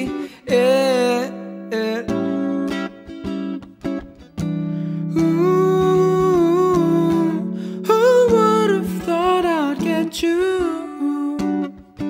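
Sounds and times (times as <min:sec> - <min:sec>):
man singing wordless ooh: 0:00.0 - 0:02.9, 0:05.1 - 0:11.8.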